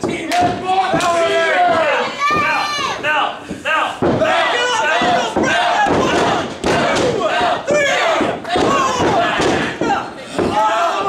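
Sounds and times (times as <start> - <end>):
spectators shouting: 0.6 - 11.0.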